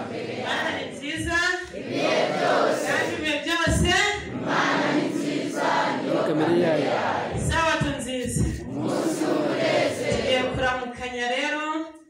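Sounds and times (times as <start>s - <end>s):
choir singing worship: 0.0s - 11.0s
lead voice over microphone: 6.0s - 8.7s.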